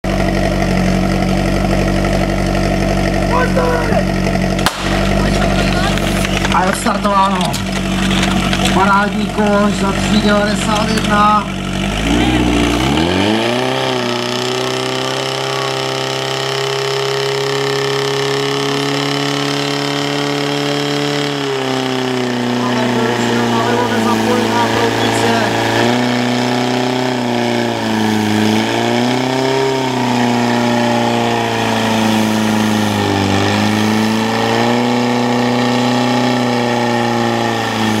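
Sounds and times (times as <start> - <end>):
pump engine running hard: 0.0 - 38.0.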